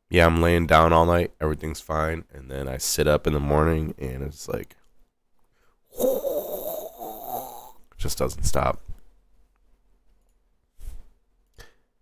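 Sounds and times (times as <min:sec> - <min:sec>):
man's raspy hissing mouth sound: 0:05.9 - 0:07.8.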